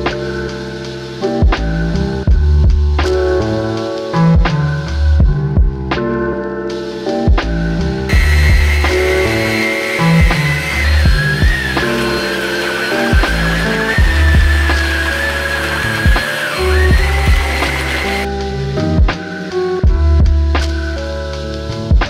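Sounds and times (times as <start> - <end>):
background music with steady beat: 0.0 - 22.0
vacuum cleaner whine: 8.1 - 18.3.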